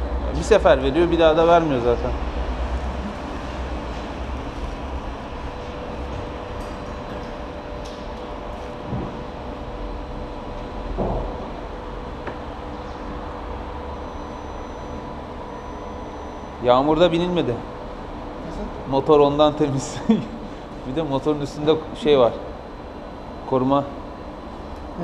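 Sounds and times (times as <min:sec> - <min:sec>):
machine hum and rumble: 0:00.0 - 0:25.0.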